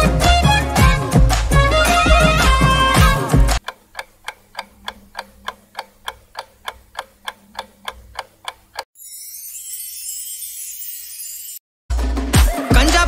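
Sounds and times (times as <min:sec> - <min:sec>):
music: 0:00.0 - 0:03.6, 0:11.9 - 0:13.0
clock ticking: 0:03.5 - 0:08.9.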